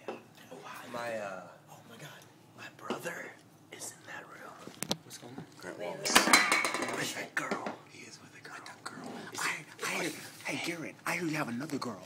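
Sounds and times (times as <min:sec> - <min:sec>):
quiet speech and whispering: 0:07.0 - 0:10.8.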